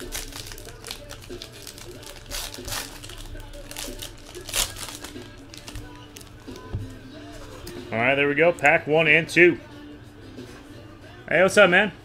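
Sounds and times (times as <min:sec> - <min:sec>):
foil wrappers crinkling: 0:00.0 - 0:06.7.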